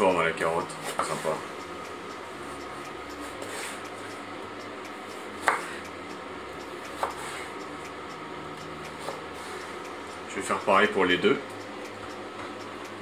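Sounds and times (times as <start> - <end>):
faint hum: 0.0 - 13.0.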